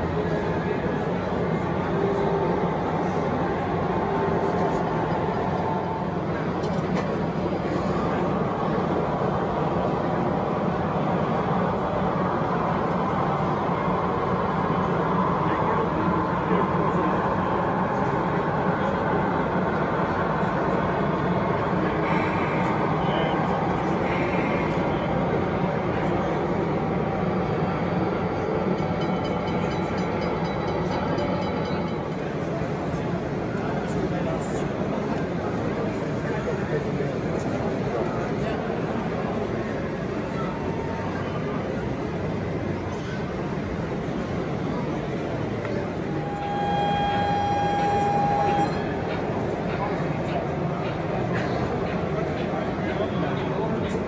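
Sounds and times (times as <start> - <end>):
model train running on track: 0.0 - 54.0.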